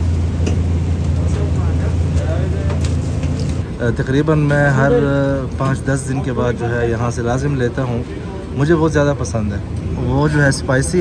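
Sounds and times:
low machine hum: 0:00.0 - 0:11.0
faint voices: 0:01.0 - 0:11.0.

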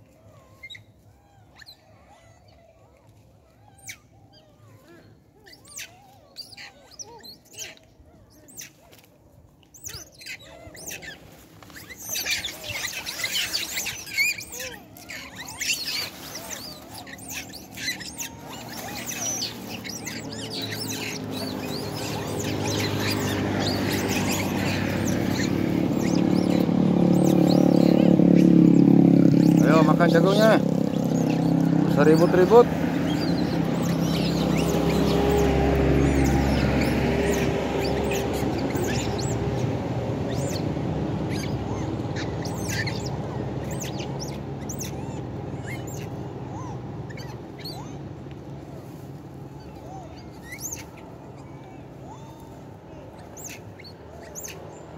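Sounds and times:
macaques squealing and chattering: 0:00.4 - 0:09.1, 0:09.7 - 0:54.9
vehicle engine approaching: 0:09.9 - 0:54.9.

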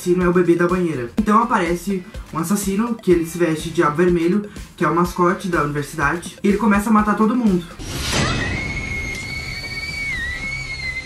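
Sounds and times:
woman screaming: 0:08.4 - 0:11.0.

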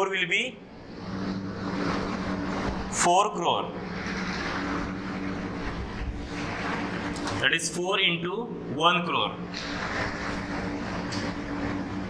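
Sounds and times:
machine hum: 0:00.0 - 0:12.0
rushing noise: 0:00.6 - 0:07.8.

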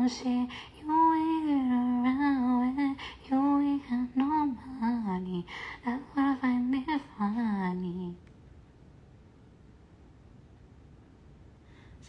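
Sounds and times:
woman singing into a microphone: 0:00.0 - 0:08.2.

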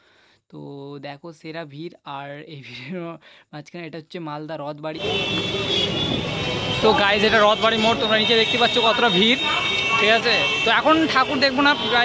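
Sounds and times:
street traffic: 0:04.9 - 0:12.0
crowd noise: 0:05.0 - 0:12.0
person speaking: 0:06.8 - 0:12.0.

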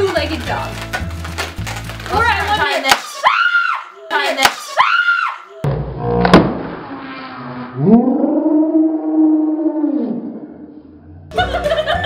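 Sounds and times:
woman squealing and screaming: 0:03.1 - 0:05.7.

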